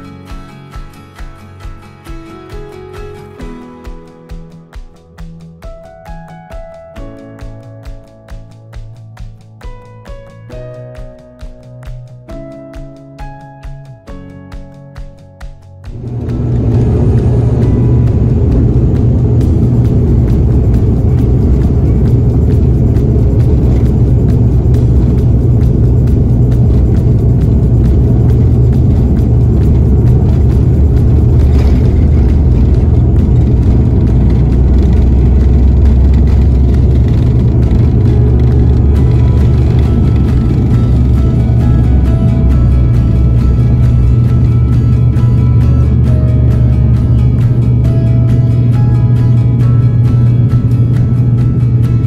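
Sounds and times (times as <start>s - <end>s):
airframe and wheels rumbling: 15.9s - 52.0s
turboprop engines droning: 15.9s - 52.0s.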